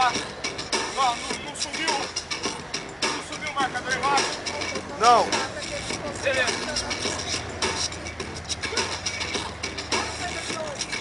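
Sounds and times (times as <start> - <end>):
bursts of voices: 0.0 - 9.2, 9.8 - 11.0
road traffic rumbling: 0.0 - 11.0.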